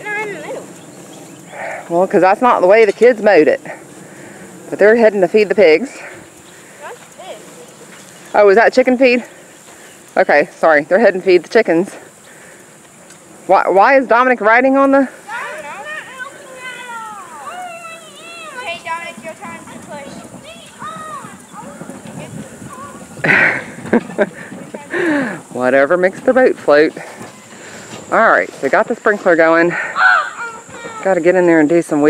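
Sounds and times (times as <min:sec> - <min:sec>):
distant children's voices: 0:00.0 - 0:01.9, 0:06.1 - 0:07.9, 0:15.1 - 0:25.4, 0:29.9 - 0:31.6
distant child calling: 0:20.5 - 0:21.9, 0:30.0 - 0:31.2
woman's breathy laugh: 0:23.2 - 0:25.4.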